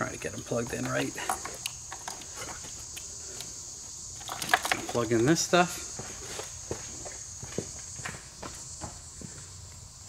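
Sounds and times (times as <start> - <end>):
steady high-pitched whine: 0.0 - 10.0.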